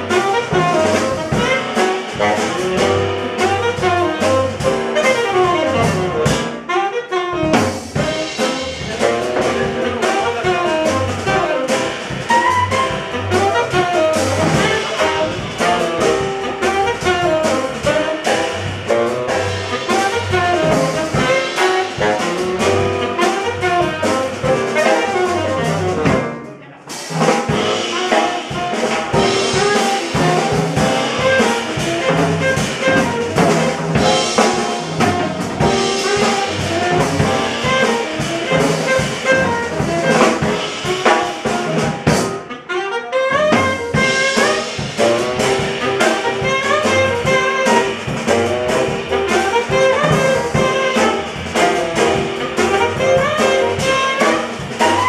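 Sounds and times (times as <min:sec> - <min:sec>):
tenor saxophone: 0:00.0 - 0:26.8, 0:27.5 - 0:55.0
double bass: 0:00.0 - 0:55.0
drum kit: 0:00.0 - 0:55.0
piano: 0:00.0 - 0:55.0.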